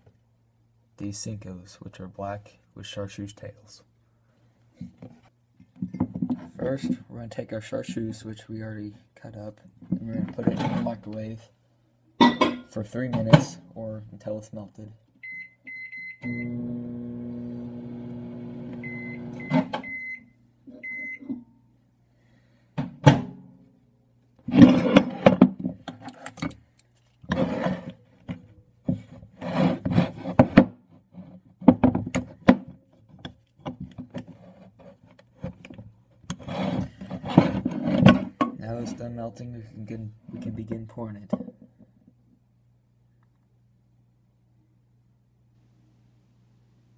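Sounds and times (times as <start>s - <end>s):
microwave keypad beeps: 15.2s - 16.6s, 18.8s - 21.3s
microwave oven humming: 16.2s - 19.7s.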